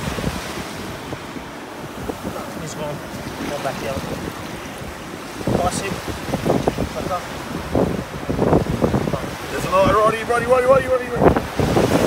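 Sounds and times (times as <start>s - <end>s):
surf washing over sand: 0.0s - 12.0s
wind rumbling on microphone: 0.0s - 12.0s.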